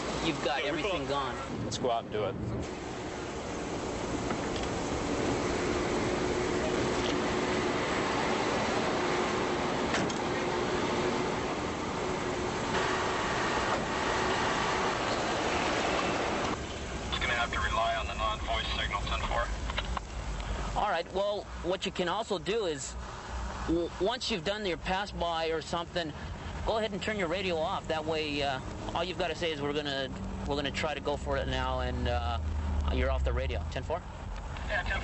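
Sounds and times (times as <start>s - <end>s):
street traffic noise: 0.0s - 35.0s.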